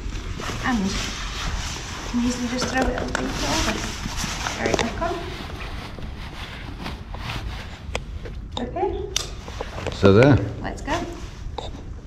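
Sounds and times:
backpack straps rustling: 0:00.0 - 0:08.2.

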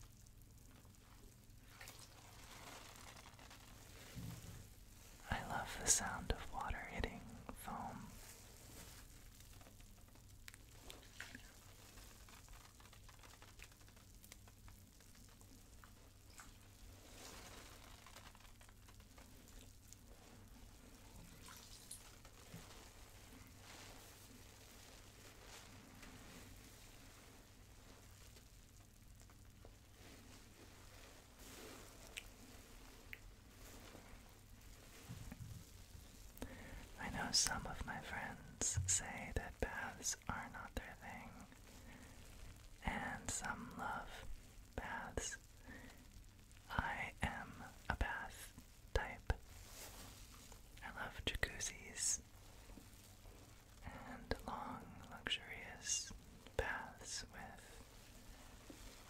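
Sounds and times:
bath foam bubbles popping: 0:00.0 - 0:05.2, 0:08.1 - 0:36.8
low steady hum: 0:00.0 - 0:59.0
water drips and ticks: 0:09.2 - 0:23.0, 0:32.0 - 0:32.4.

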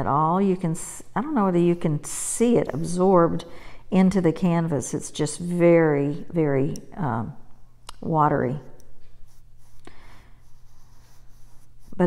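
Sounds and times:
paintbrush brushing on fabric: 0:09.1 - 0:12.0.

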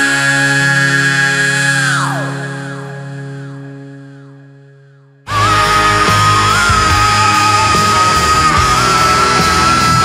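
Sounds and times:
man singing high note: 0:00.0 - 0:03.5, 0:05.3 - 0:10.0
rock band chord ringing: 0:05.3 - 0:10.0.

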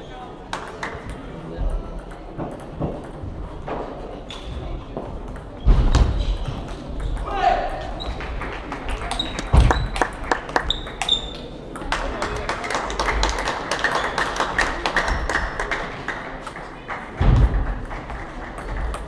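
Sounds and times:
hubbub of voices: 0:00.0 - 0:19.0.

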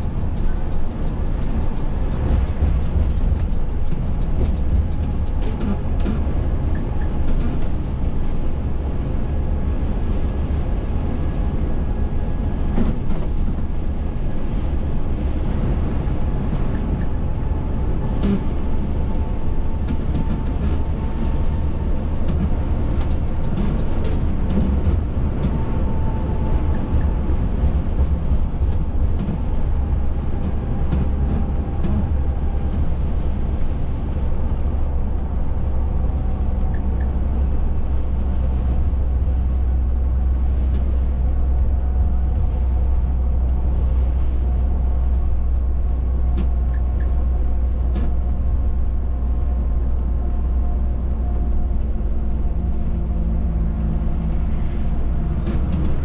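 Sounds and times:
tyre and road noise: 0:00.0 - 0:49.8, 0:50.4 - 0:56.0
coach engine drone: 0:00.0 - 0:56.0.

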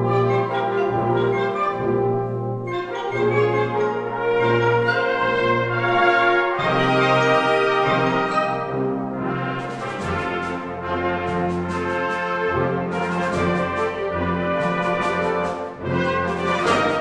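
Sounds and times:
wind band brass chords: 0:00.0 - 0:17.0
accented percussive hits: 0:09.6 - 0:17.0.

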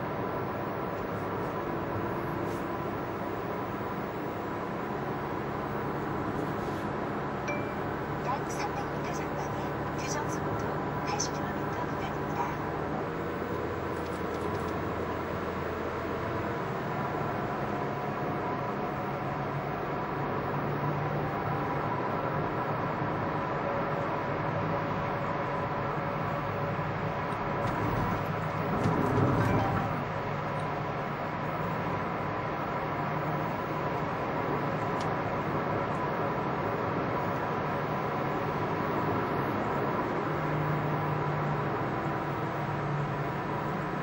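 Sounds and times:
car road and engine noise: 0:00.0 - 0:44.0.

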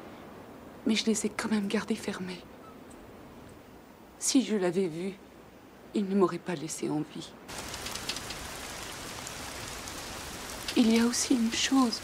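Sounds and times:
steady rain falling: 0:07.4 - 0:12.0.

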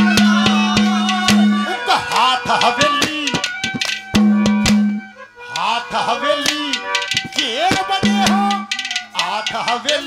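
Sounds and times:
hand drum with swooping pitch: 0:00.0 - 0:01.7, 0:02.9 - 0:05.0
steady held note: 0:00.0 - 0:05.7, 0:06.4 - 0:09.5
sharp metallic clinks: 0:06.5 - 0:10.0.

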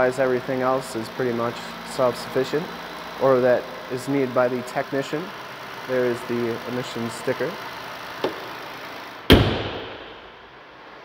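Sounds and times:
car engine idling: 0:00.0 - 0:11.0
car hood slamming shut: 0:09.3 - 0:10.4.

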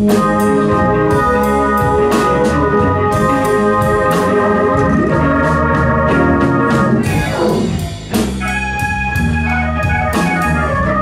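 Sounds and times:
live blues band playing: 0:00.0 - 0:11.0
organ chords: 0:00.0 - 0:11.0
drum strike: 0:03.2 - 0:09.2.

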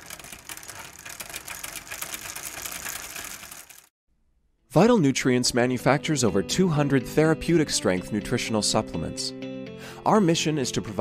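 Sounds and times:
rapid clicking and crackling: 0:00.0 - 0:03.9.

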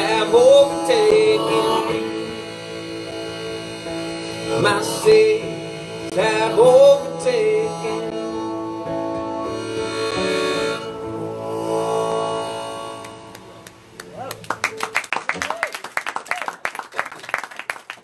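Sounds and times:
harmonica chords: 0:00.0 - 0:15.1
acoustic guitar: 0:00.0 - 0:15.4
audience clapping: 0:13.0 - 0:18.0.

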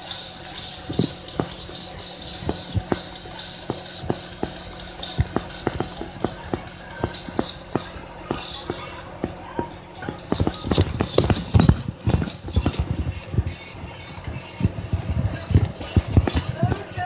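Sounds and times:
bus low hum: 0:00.0 - 0:17.0
sharp taps: 0:00.8 - 0:17.0.

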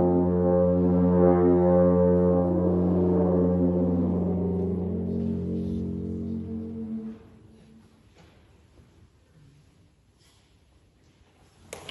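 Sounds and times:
alphorn playing: 0:00.0 - 0:07.8.

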